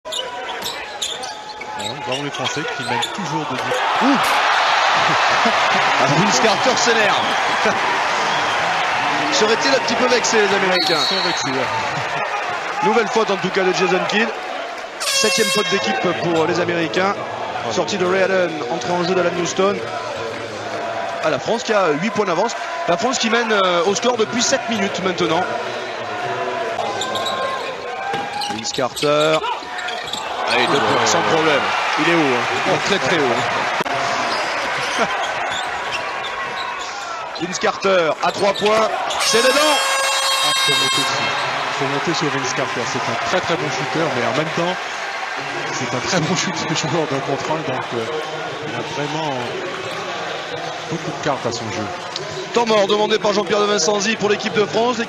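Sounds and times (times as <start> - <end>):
arena crowd noise: 0.0 - 55.0
sneakers squeaking on court: 0.1 - 3.2, 26.9 - 30.9, 34.4 - 36.9.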